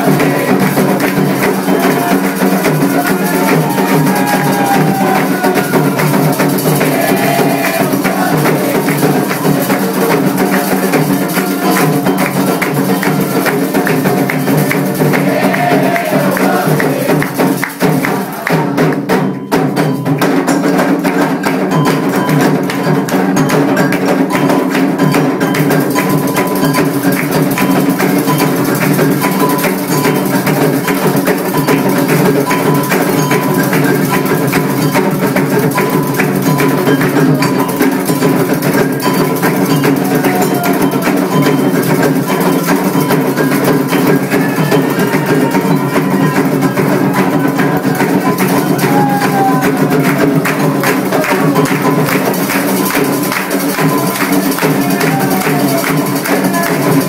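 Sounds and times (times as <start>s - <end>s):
hand drums playing fast rhythm: 0.0s - 57.0s
struck metal bell: 21.7s - 49.0s.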